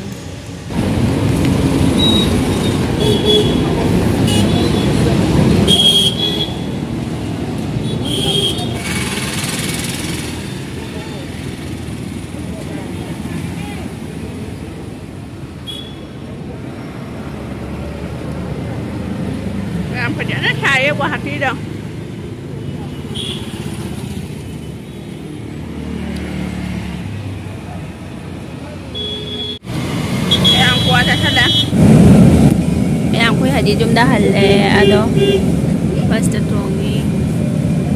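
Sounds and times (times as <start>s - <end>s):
scooters and motorcycles passing: 8.6s - 15.1s, 16.3s - 28.9s.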